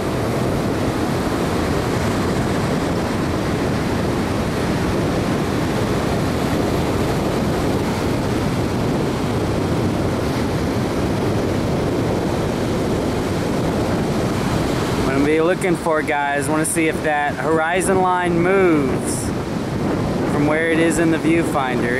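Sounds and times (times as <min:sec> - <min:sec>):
ocean surf breaking: 0:00.0 - 0:21.9
wind buffeting microphone: 0:00.0 - 0:21.9.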